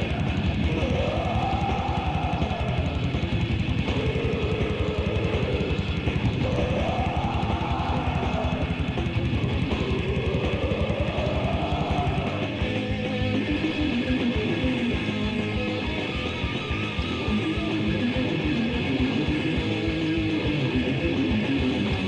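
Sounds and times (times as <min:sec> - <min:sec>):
distorted guitars: 0:00.0 - 0:22.0
fast drumming: 0:00.0 - 0:22.0.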